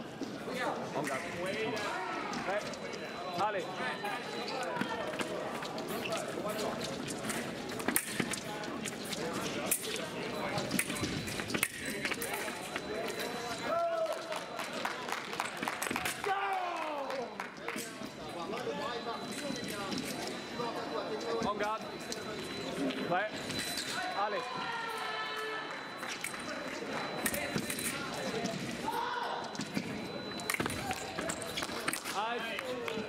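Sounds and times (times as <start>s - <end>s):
many voices talking: 0.0s - 33.0s
fencing footwork and blade taps: 4.6s - 13.6s, 26.0s - 28.8s, 29.4s - 33.0s.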